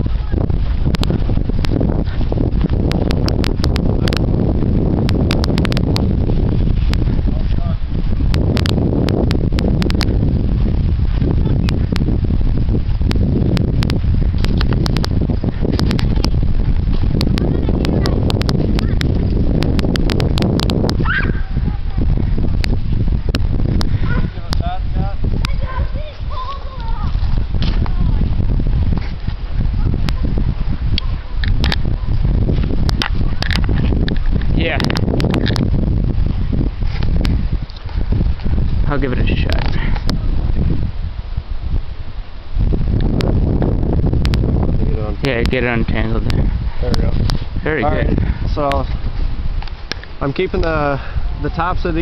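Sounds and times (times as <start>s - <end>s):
wind rumbling on microphone: 0.0s - 52.0s.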